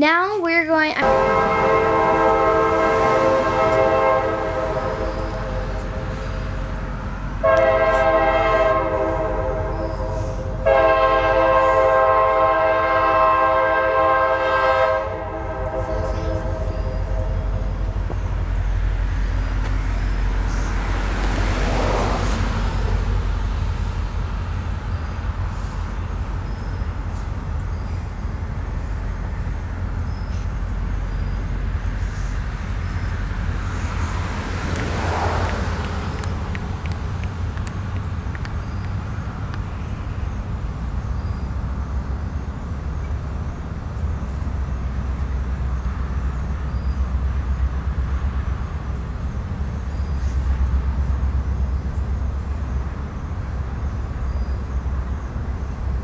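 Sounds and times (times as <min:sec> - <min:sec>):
train rumbling past: 0:00.0 - 0:56.0
locomotive air horn blasts: 0:01.0 - 0:06.5, 0:07.4 - 0:17.8.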